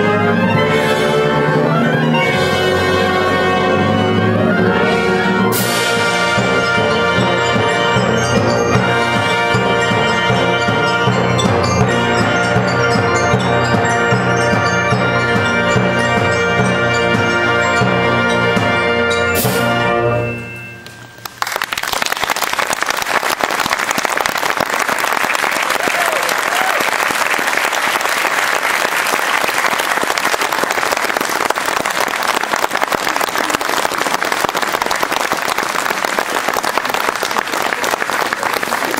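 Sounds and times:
brass chord of wind band: 0.0 - 20.4
audience applause: 21.2 - 38.9.

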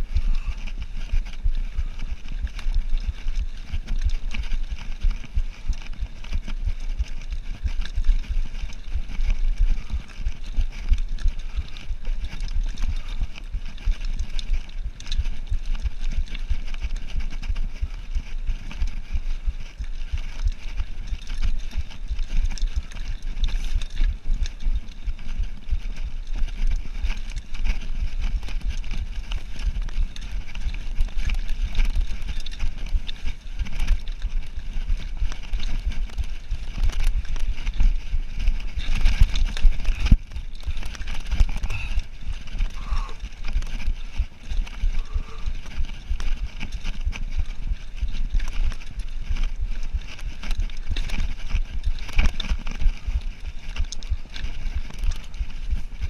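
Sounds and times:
bike rattling over stones: 0.0 - 56.0
low rumble of tyres: 0.0 - 56.0.

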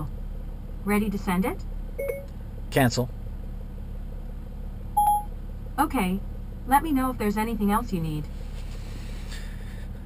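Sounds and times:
diesel engine idling: 0.0 - 10.0
short electronic beep: 2.0 - 2.3, 5.0 - 5.3.

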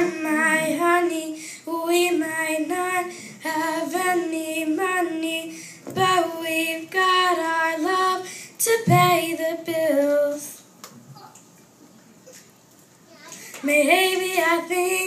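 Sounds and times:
boy singing into a microphone: 0.0 - 10.7, 13.2 - 15.0.

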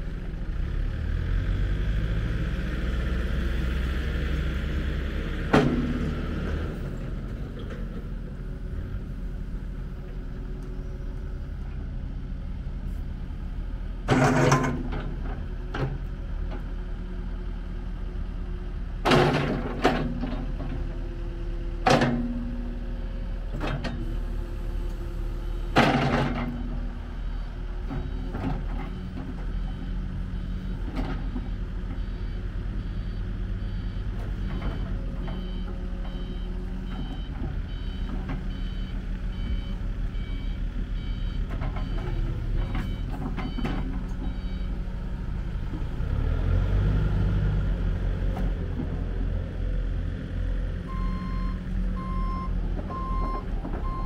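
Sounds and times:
diesel excavator engine idling: 3.5 - 54.0
back-up alarm beeping: 50.9 - 54.0.

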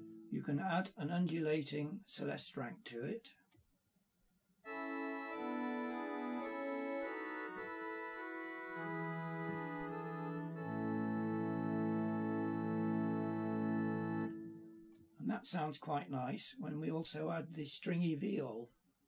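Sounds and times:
pipe organ held chords: 4.7 - 15.2.

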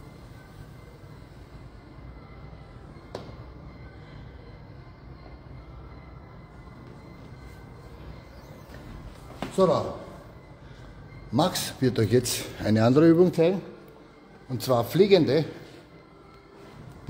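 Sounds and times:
low gym room rumble: 0.0 - 17.0.

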